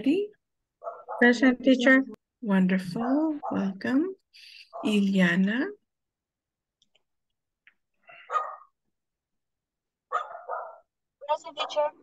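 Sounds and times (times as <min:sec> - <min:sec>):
dog barking: 0:00.8 - 0:01.4, 0:03.4 - 0:03.7, 0:08.2 - 0:08.8, 0:10.1 - 0:10.9.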